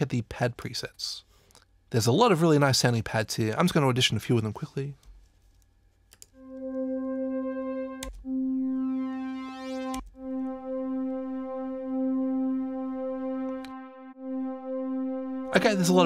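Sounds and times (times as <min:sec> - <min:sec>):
sustained synth pad notes: 0:06.4 - 0:16.0.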